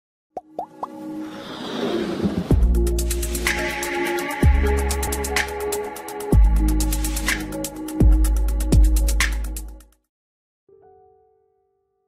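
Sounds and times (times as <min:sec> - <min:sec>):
building music: 0:00.6 - 0:09.1
whoosh: 0:01.2 - 0:02.8.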